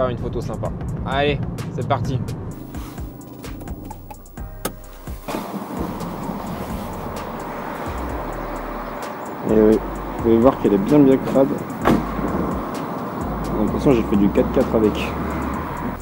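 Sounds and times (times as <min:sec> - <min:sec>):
road and engine noise in car: 0:00.6 - 0:16.0
car wash hiss: 0:02.6 - 0:16.0.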